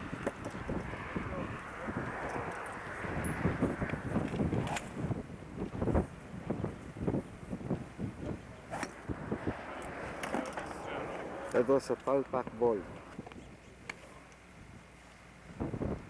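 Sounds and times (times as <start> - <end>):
low rumbling noise: 0.0 - 13.3
golf club striking ball: 8.7 - 9.1.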